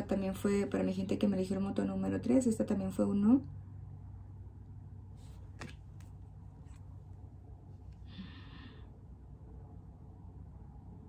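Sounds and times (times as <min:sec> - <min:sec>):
low steady hum: 0:00.0 - 0:11.0
card laid down on table: 0:05.2 - 0:06.8.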